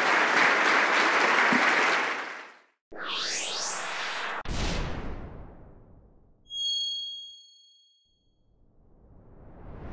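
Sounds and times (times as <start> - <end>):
whoosh: 8.8 - 9.9.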